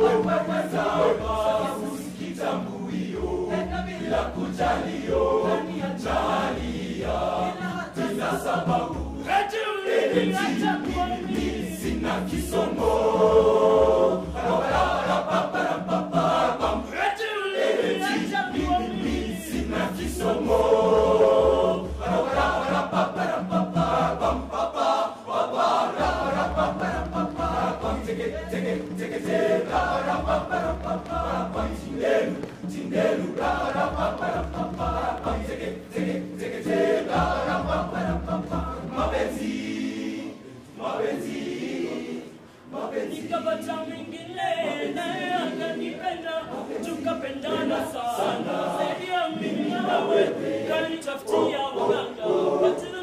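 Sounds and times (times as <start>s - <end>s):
boys' choir singing: 0.0s - 53.0s.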